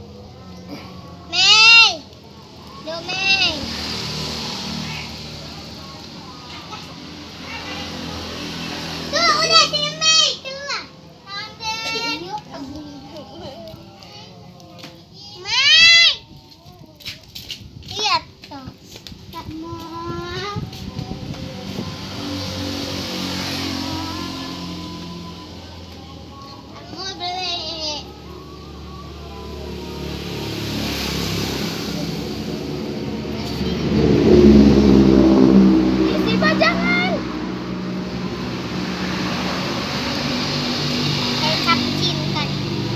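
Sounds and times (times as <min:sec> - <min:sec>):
vehicle engine running: 0:00.0 - 0:13.8, 0:17.8 - 0:42.9
girls talking excitedly: 0:00.6 - 0:14.4, 0:15.1 - 0:21.1, 0:21.7 - 0:28.4, 0:29.4 - 0:42.9.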